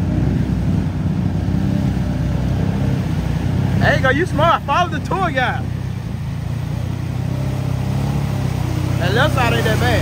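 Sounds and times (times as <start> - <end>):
atv engine running: 0.0 - 10.0
churning through mud water: 0.0 - 10.0.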